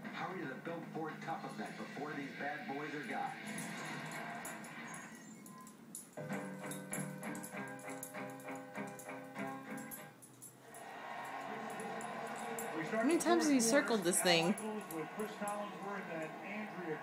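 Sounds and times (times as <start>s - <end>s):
instrumental music from television: 0.0s - 17.0s.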